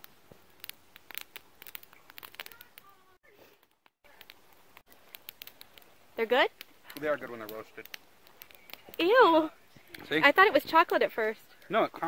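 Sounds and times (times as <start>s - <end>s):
campfire crackling: 0.0s - 12.0s
low hiss: 0.0s - 12.0s.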